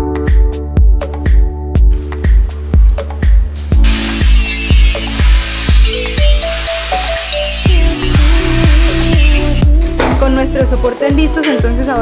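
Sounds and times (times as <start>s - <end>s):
electronic music with steady beat: 0.0s - 11.9s
angle grinder grinding steel: 3.8s - 9.7s.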